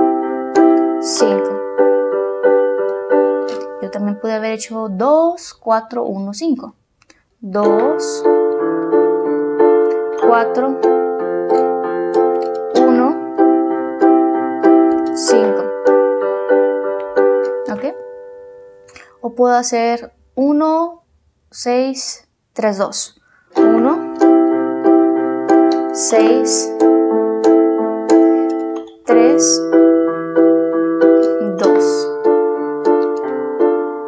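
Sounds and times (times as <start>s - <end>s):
electronic keyboard piano chord: 0.0s - 5.0s, 7.5s - 19.1s, 23.6s - 34.0s.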